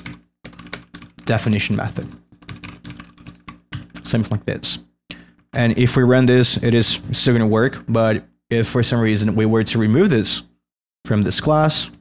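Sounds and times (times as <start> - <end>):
fast typing on keyboard: 0.0 - 4.4.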